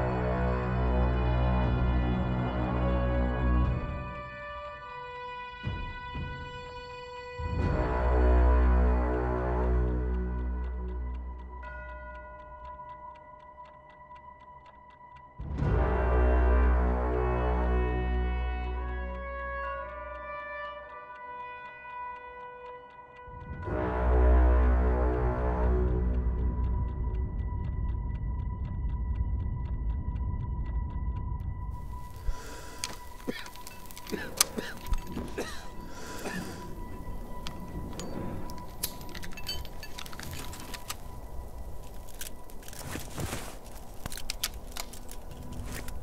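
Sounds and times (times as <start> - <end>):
dark film score: 0.0 - 46.0
fast clock ticking: 9.2 - 15.9, 18.8 - 42.8.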